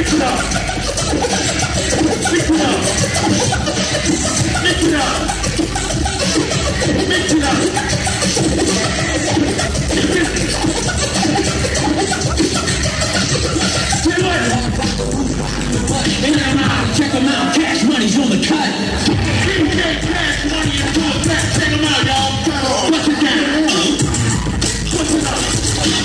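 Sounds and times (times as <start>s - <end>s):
hip-hop beat: 0.0s - 26.0s
record scratching on turntables: 0.0s - 26.0s.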